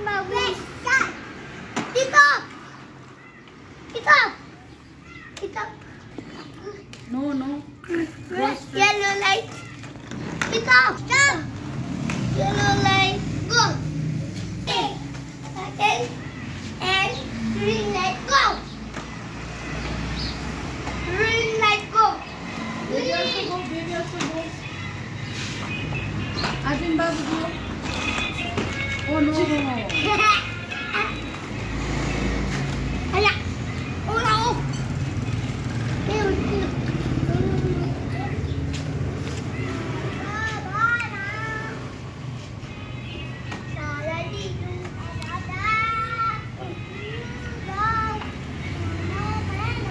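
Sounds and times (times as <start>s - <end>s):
young children calling out: 1.9s - 5.9s, 14.6s - 18.8s
child's sing-song vocalizations: 36.0s - 38.6s, 43.4s - 49.9s.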